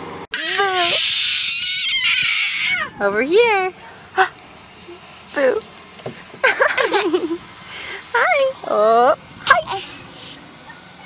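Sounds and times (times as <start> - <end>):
toddler squealing: 0.4 - 3.0.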